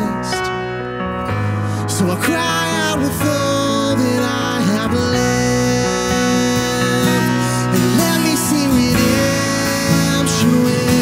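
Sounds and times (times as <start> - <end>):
man singing: 0.0 - 0.8, 1.7 - 11.0
acoustic guitar: 0.0 - 11.0.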